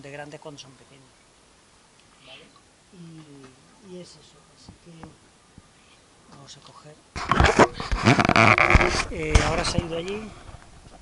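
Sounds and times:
camera handling rustling: 7.2s - 9.6s.

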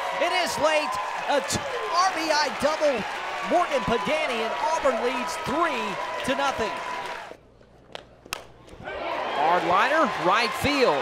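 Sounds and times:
crowd noise: 0.0s - 7.4s.

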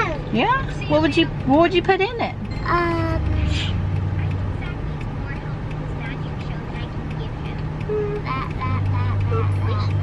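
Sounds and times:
car engine rumble inside cabin: 0.0s - 10.0s
person murmuring: 7.8s - 9.9s.

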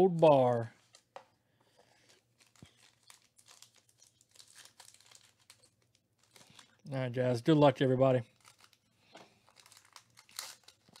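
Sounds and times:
foil pack crinkling: 1.8s - 7.5s, 8.1s - 11.0s.

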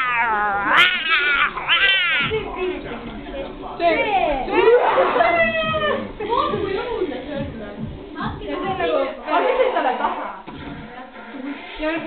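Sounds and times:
cat meowing long: 0.0s - 2.3s.

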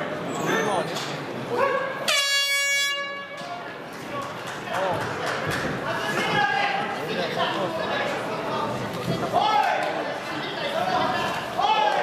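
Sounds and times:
air horn blast: 2.1s - 3.5s
crowd shouting: 10.6s - 12.0s.

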